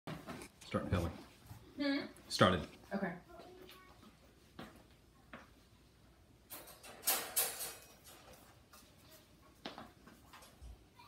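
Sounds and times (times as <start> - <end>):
wire dog crate rattling: 6.5 - 8.5.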